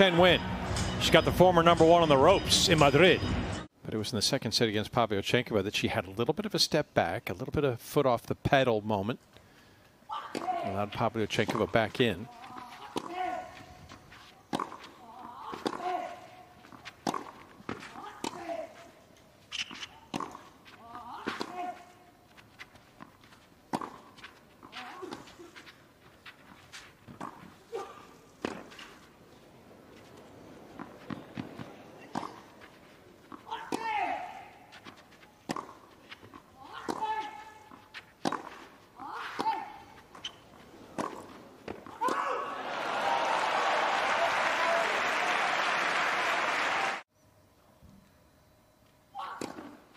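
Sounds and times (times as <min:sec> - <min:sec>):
racket hitting tennis ball: 0:10.3 - 0:29.1, 0:29.7 - 0:42.4
crowd applause: 0:42.5 - 0:47.0.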